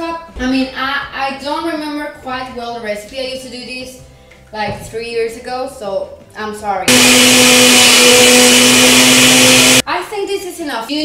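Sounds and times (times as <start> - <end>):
blender whirring: 6.9 - 9.8.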